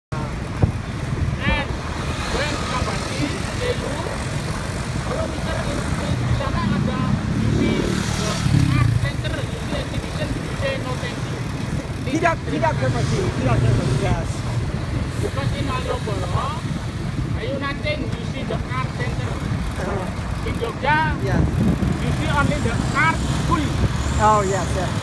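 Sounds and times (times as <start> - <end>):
passing traffic: 0.1 - 25.0
vehicle engine and road rumble: 0.1 - 25.0.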